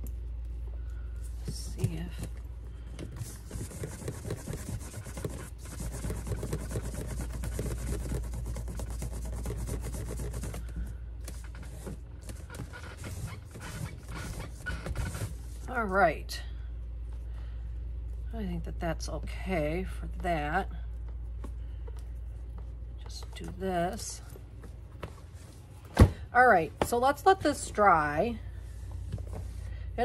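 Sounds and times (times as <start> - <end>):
cloth rubbing leather strap: 3.2 - 10.6.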